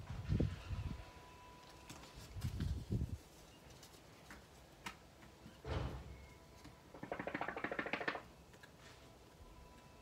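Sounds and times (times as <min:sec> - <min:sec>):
rapid rattle of small clicks: 0:07.0 - 0:08.2.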